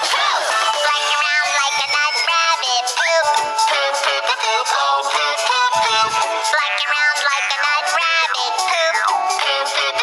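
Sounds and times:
cartoon song backing music: 0:00.0 - 0:10.0
synthetic high voice singing: 0:00.0 - 0:10.0.

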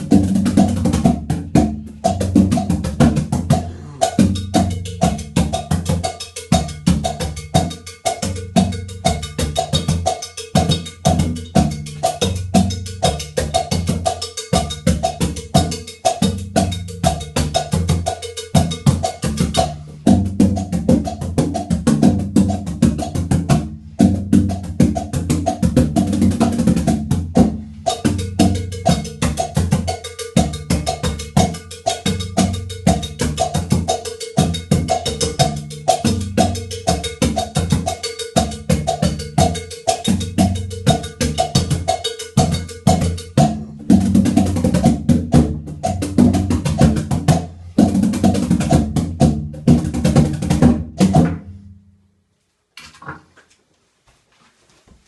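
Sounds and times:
surdo drums: 0:00.0 - 0:51.7
cowbells clanking: 0:03.4 - 0:20.0, 0:27.9 - 0:43.5.

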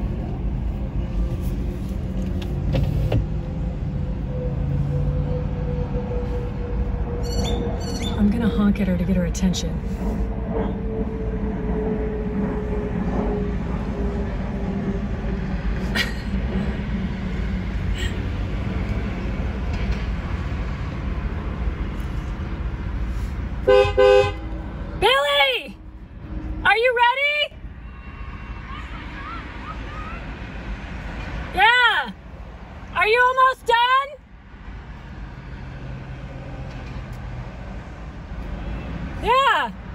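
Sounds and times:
road traffic rumble: 0:00.0 - 0:39.9
car horn honk: 0:23.6 - 0:24.4.

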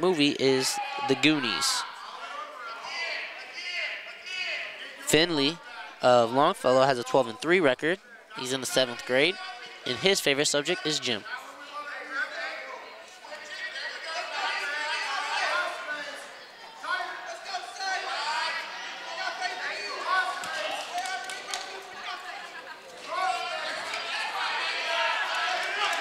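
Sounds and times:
people calling out and talking: 0:00.0 - 0:26.0.

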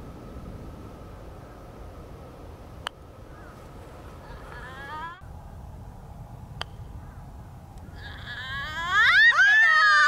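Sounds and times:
low steady rumble: 0:00.0 - 0:09.3.

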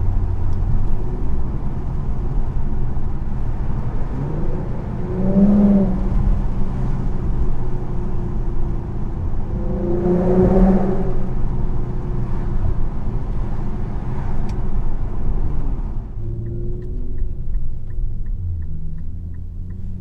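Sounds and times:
car exhaust drone from inside cabin: 0:00.0 - 0:20.0
road noise: 0:00.0 - 0:20.0.

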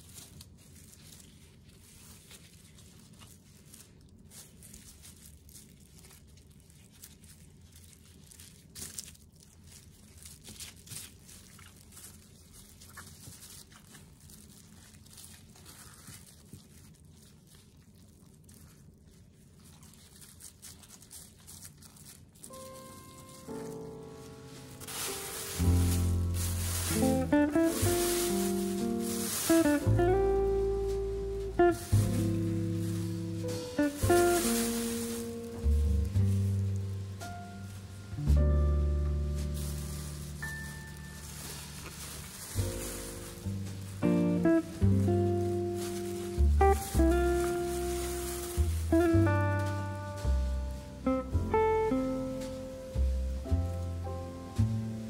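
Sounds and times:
plastic sheet and leaves rustling: 0:00.0 - 0:55.0
background music: 0:22.6 - 0:41.8, 0:42.6 - 0:55.0.

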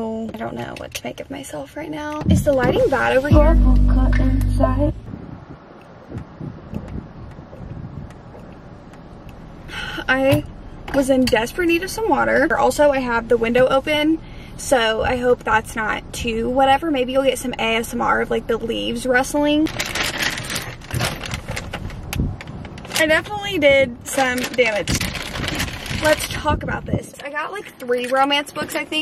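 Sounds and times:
low outdoor rumble: 0:00.0 - 0:29.0
plastic bag crinkling: 0:19.7 - 0:23.3, 0:24.0 - 0:26.4.

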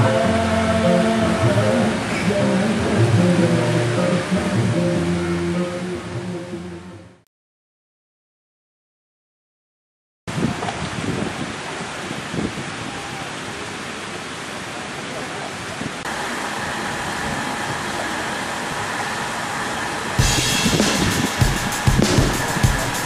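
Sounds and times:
steady rushing noise: 0:16.0 - 0:23.0
music with drum kit beat: 0:20.2 - 0:23.0.

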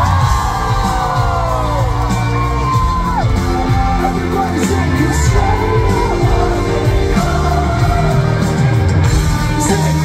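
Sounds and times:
audience whooping and cheering: 0:00.0 - 0:10.0
live pop band playing: 0:00.0 - 0:10.0.

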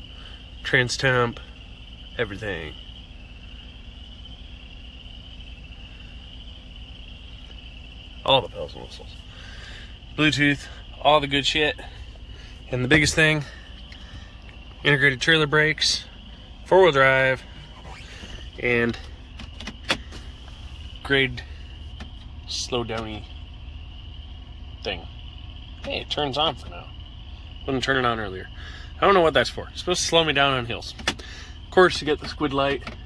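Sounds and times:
crickets chirping: 0:00.0 - 0:33.0
low steady hum: 0:00.0 - 0:33.0
truck engine idling: 0:00.0 - 0:33.0.

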